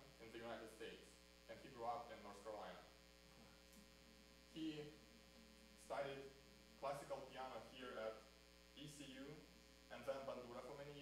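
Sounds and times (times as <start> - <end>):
man speaking: 0.0 - 3.5, 4.5 - 5.1, 5.8 - 11.0
electrical mains hum: 0.0 - 11.0.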